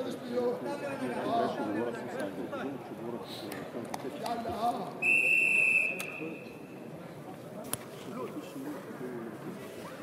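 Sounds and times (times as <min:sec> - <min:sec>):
voices in a hall: 0:00.0 - 0:10.0
referee's whistle blast: 0:05.0 - 0:06.5.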